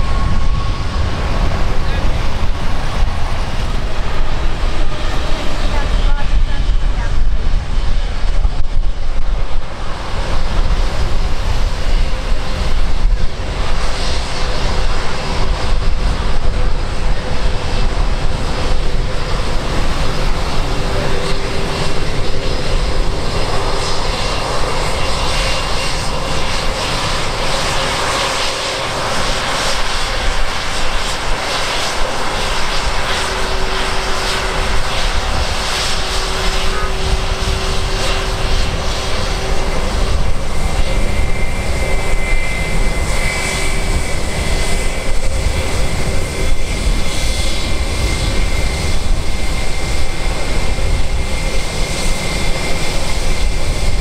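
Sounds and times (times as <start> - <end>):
jet engines rushing and whining: 0.0 - 54.0.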